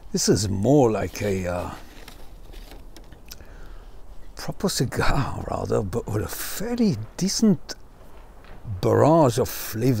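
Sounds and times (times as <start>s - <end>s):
outdoor background hiss: 0.0s - 10.0s
faint mouth clicks: 3.3s - 3.5s.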